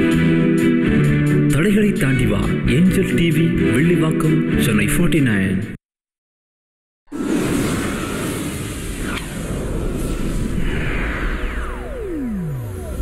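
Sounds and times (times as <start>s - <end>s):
long falling swoosh: 7.1s - 13.0s.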